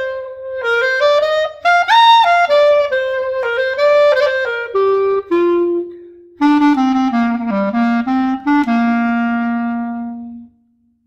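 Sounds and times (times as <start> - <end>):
clarinet long note: 0.0 - 10.6.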